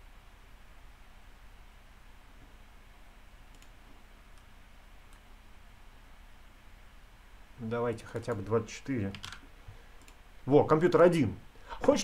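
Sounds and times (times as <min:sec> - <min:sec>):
low room hum: 0:00.0 - 0:12.0
computer mouse clicks: 0:03.5 - 0:04.5, 0:05.1 - 0:05.3, 0:08.1 - 0:08.5, 0:09.1 - 0:10.2.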